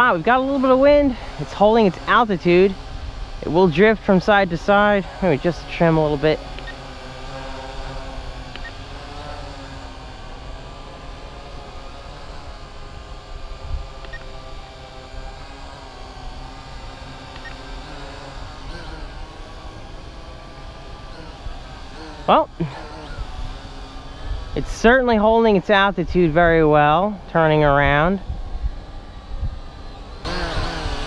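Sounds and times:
wind rumble on microphone: 0.0s - 6.4s, 11.8s - 16.2s, 22.6s - 31.0s
drone propellers humming: 0.0s - 31.0s.

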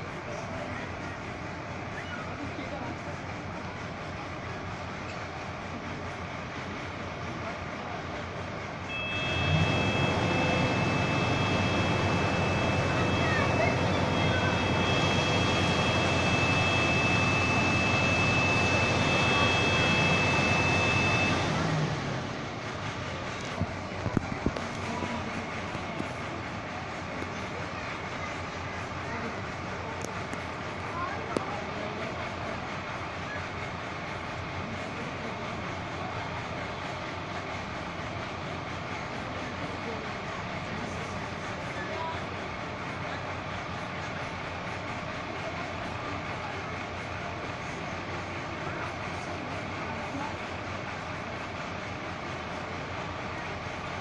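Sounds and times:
ladder engine and hydraulics whine: 0.0s - 54.0s
street background noise: 0.0s - 54.0s.

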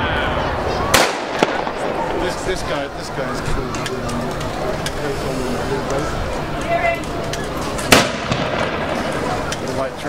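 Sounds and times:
blank gunshot bang with echo: 7.9s - 8.9s.

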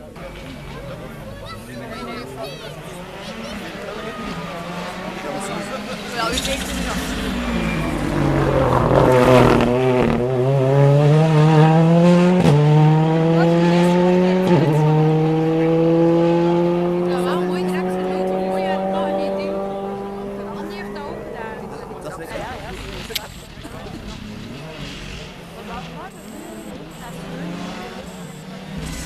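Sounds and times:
rally car engine accelerating: 0.0s - 29.0s.

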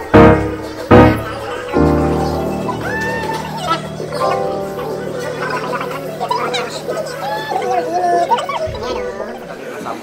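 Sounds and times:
background music: 0.0s - 9.3s
indistinct voices: 0.0s - 9.8s.

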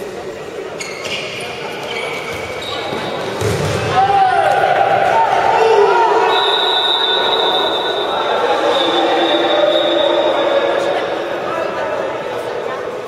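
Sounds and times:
shoe squeaks: 0.8s - 3.3s
players shouting: 3.7s - 11.4s.

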